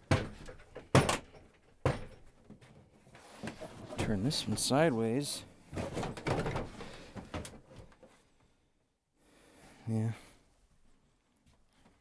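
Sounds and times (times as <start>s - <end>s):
plastic cases knocking and scraping: 5.7s - 8.0s.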